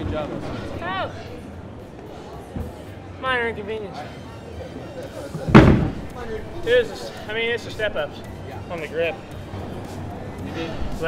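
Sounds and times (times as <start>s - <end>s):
gym room noise: 5.2s - 6.8s
dull thump: 5.5s - 6.1s.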